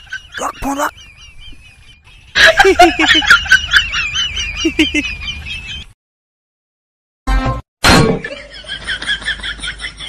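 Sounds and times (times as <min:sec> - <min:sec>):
high warbling bird twitter: 0:00.0 - 0:05.9.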